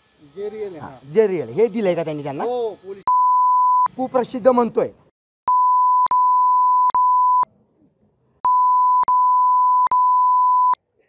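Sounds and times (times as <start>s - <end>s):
censor bleep tone: 3.1s - 3.9s, 5.5s - 7.5s, 8.5s - 10.8s.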